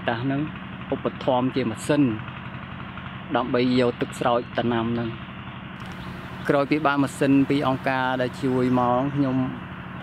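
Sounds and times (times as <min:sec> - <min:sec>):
small engine humming: 0:00.0 - 0:10.0
man speaking: 0:06.5 - 0:09.6.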